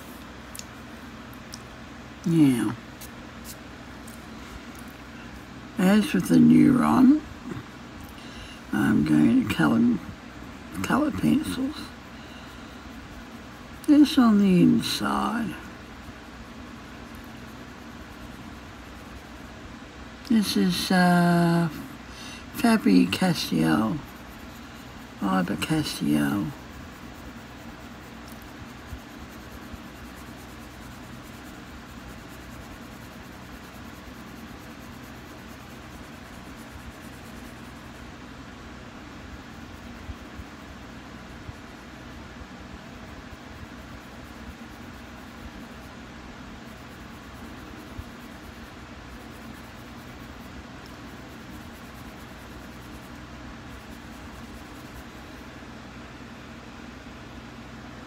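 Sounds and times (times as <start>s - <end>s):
low background hum: 0.0s - 58.0s
pencil scratching on paper: 22.2s - 38.2s, 46.6s - 55.4s.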